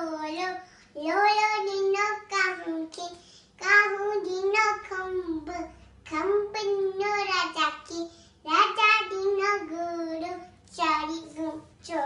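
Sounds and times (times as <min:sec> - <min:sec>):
girl chanting a nursery rhyme: 0:00.0 - 0:12.0.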